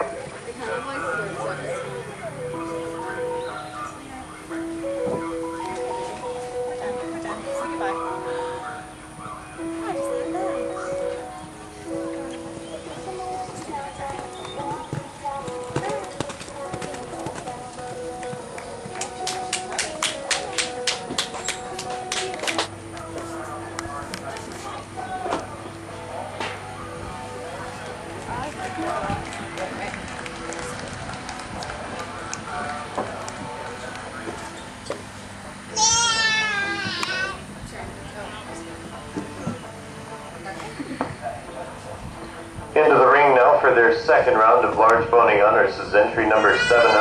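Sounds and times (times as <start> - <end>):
background music: 0.0 - 47.0
faint people talking: 0.0 - 47.0
pony hoofbeats on sand: 12.9 - 20.0
people talking: 35.8 - 39.6, 42.8 - 47.0.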